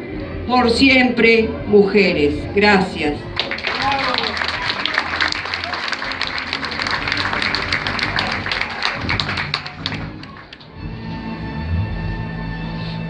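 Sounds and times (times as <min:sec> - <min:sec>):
audience clapping: 0:03.2 - 0:10.8.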